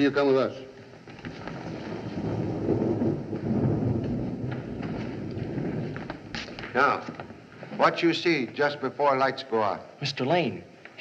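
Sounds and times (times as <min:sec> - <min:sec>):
low rumbling noise: 0:00.8 - 0:08.6.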